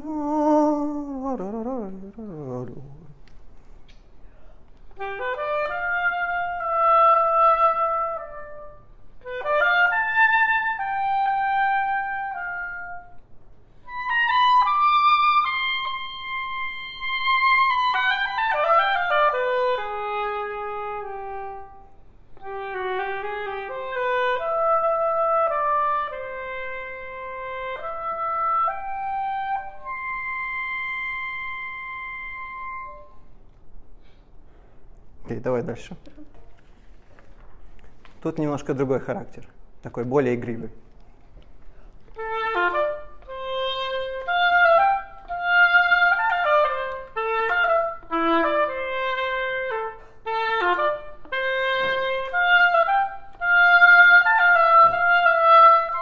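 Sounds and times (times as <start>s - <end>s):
oboe melody: 0.0s - 3.3s, 4.9s - 13.2s, 13.8s - 33.4s, 42.0s - 56.0s
player breathing: 3.6s - 4.8s, 41.6s - 42.1s.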